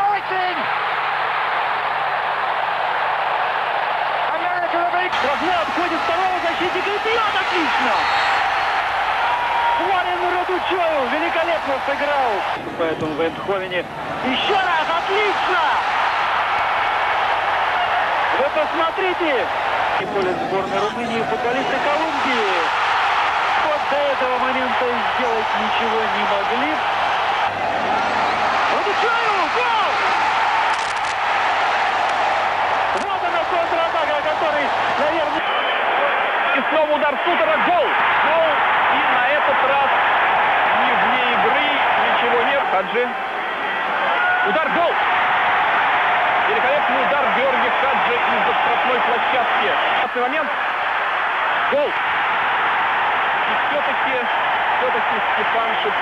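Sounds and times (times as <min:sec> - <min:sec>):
stadium crowd din: 0:00.0 - 0:56.0.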